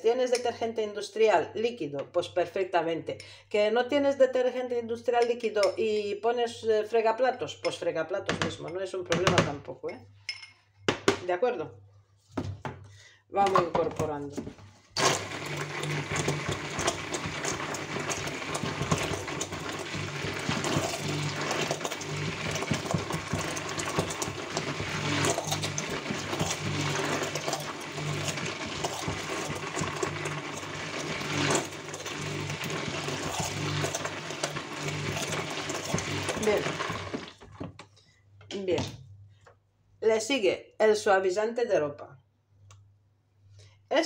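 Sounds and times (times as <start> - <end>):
batter churning: 14.9 - 37.6
stick blender motor hum: 15.0 - 37.7.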